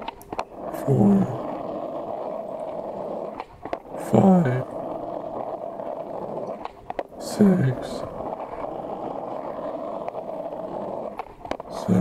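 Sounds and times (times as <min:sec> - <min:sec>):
skateboard clacks: 0:00.0 - 0:12.0
skateboard wheels rolling on asphalt: 0:00.0 - 0:12.0.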